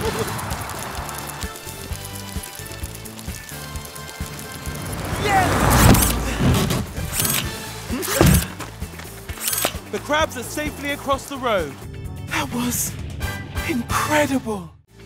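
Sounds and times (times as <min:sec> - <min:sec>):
rumbling whoosh: 0:04.2 - 0:07.4.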